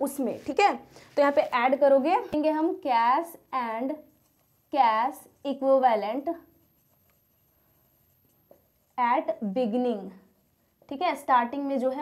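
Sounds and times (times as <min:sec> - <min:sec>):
woman speaking: 0:00.0 - 0:04.0, 0:04.8 - 0:06.5, 0:09.0 - 0:10.3, 0:10.9 - 0:12.0
marker pen on whiteboard: 0:00.0 - 0:12.0.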